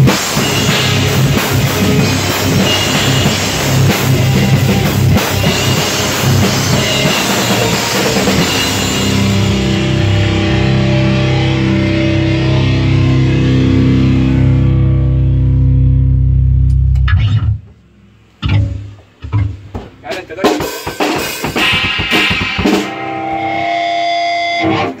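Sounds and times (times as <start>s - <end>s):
distorted guitar chord ringing: 0.0s - 20.0s, 21.6s - 25.0s
guitar tone: 0.0s - 20.5s, 21.6s - 25.0s
knocks: 18.4s - 20.0s
voices: 20.0s - 20.6s.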